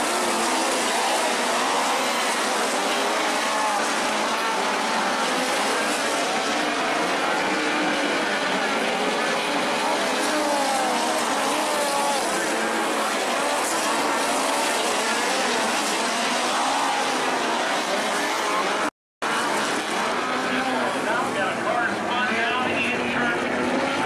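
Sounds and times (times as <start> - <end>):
crowd voices: 0.0 - 24.0
race car engines: 0.0 - 24.0.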